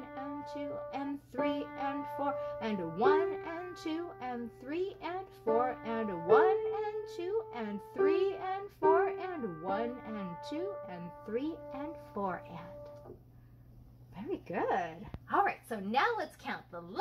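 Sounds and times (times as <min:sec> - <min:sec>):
upright piano slow melody: 0:00.0 - 0:13.2.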